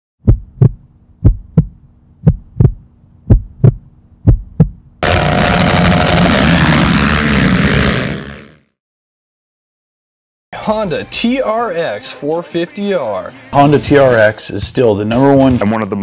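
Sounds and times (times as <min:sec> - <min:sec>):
heartbeat thumps: 0:00.2 - 0:04.9
loud rushing noise: 0:05.0 - 0:08.6.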